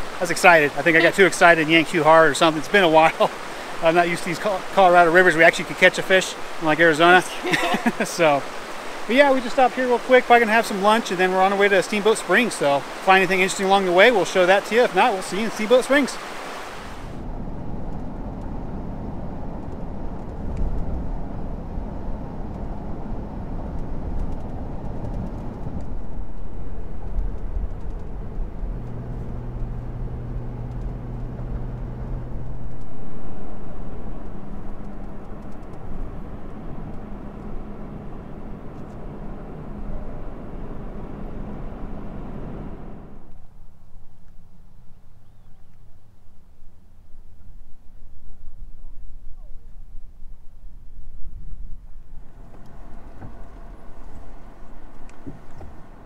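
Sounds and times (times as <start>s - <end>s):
car engine and tyre noise: 0.0s - 46.6s, 50.8s - 56.0s.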